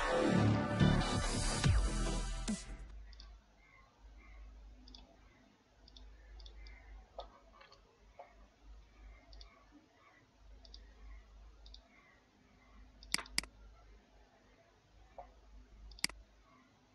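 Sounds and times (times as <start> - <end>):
computer mouse button clicks: 13.0 - 13.5.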